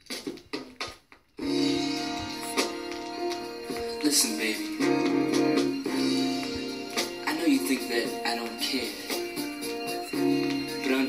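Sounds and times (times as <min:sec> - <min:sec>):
soul band playing chords: 0:01.4 - 0:11.0.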